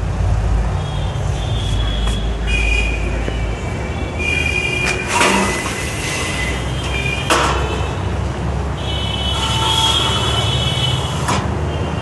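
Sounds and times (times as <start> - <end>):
metal squealing on metal: 4.2 - 7.2.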